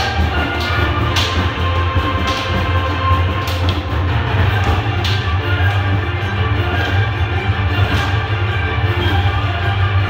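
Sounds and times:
group of drummers playing: 0.0 - 9.6.

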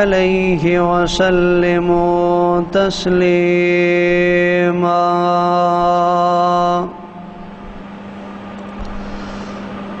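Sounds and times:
low electric hum: 0.0 - 10.0.

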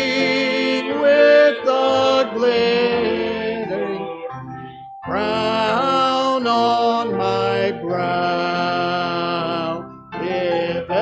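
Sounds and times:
congregation singing a hymn: 0.0 - 4.4, 5.1 - 11.0.

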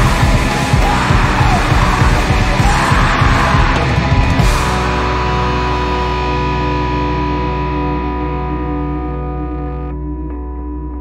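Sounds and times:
yelled vocals: 0.0 - 7.1
heavy fast band music: 0.0 - 9.4.

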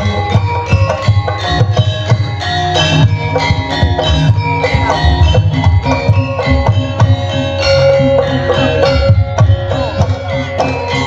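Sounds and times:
bronze gong-chimes: 0.0 - 11.0
hand drums beating: 0.0 - 11.0.

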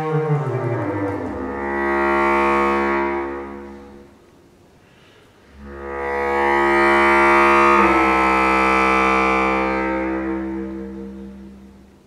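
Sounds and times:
bass clarinet long note: 0.0 - 4.2, 5.5 - 12.0.

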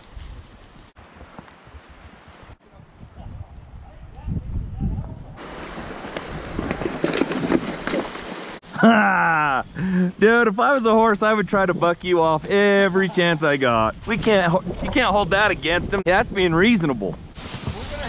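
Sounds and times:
hoof steps on brushy trail: 0.0 - 2.6, 5.4 - 8.6, 17.2 - 18.0
wind rumbling on microphone: 0.0 - 8.6, 13.6 - 18.0.

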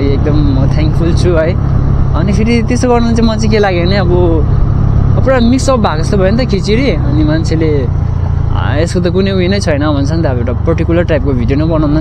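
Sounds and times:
person talking: 0.0 - 4.5, 5.2 - 12.0
motorcycle riding: 0.0 - 12.0.

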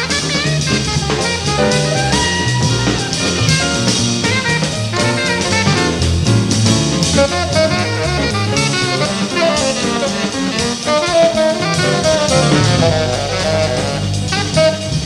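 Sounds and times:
double bass: 0.0 - 15.0
drum kit with cymbals: 0.0 - 15.0
piano: 0.0 - 15.0
tenor saxophone line: 0.0 - 15.0.

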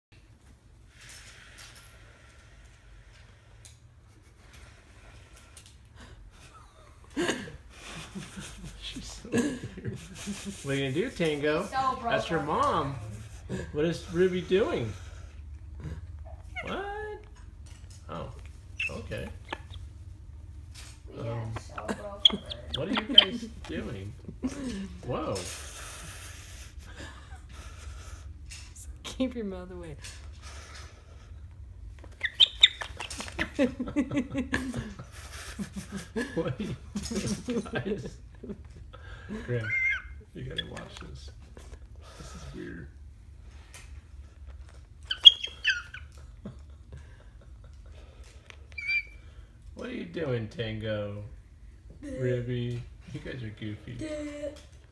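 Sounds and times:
woman laughing: 6.4 - 10.6, 21.7 - 23.6, 33.0 - 38.6
parrot chirping: 18.6 - 20.1, 21.7 - 23.6, 32.1 - 33.5, 39.6 - 41.0, 45.0 - 46.3, 48.6 - 49.4
parrot call rising in pitch: 39.6 - 40.2, 48.8 - 49.2.

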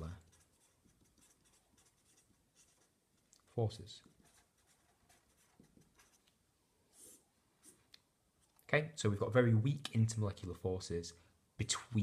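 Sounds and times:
marker scratching on paper: 0.0 - 3.0, 4.1 - 6.3.

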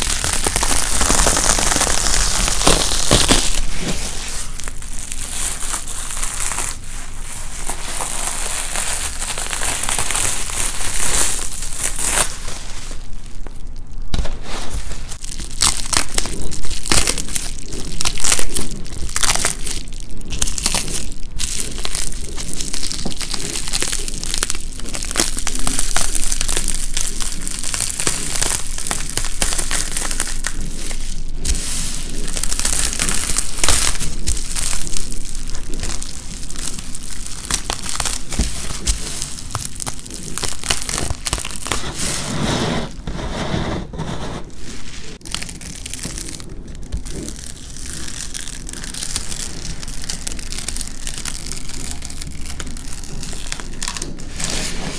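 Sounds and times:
bubble wrap crinkling: 0.0 - 54.9.

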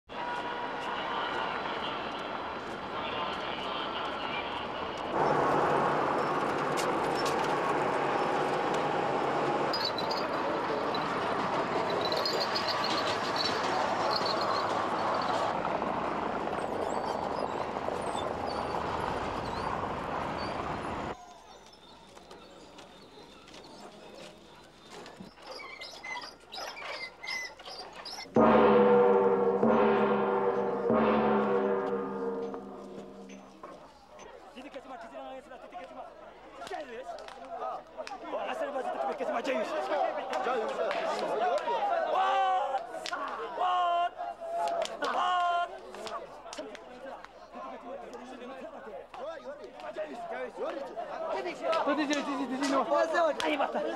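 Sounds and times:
traffic: 0.1 - 25.5
voices: 0.1 - 27.1, 27.8 - 53.9.

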